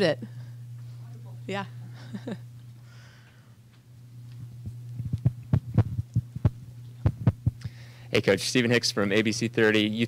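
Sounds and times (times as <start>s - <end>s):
low electrical hum: 0.0s - 10.0s
microphone handling thumps: 4.6s - 7.6s.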